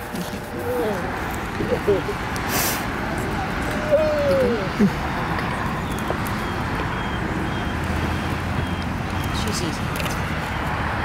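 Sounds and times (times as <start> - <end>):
outdoor background noise: 0.0 - 11.0
short hiss: 2.5 - 2.9.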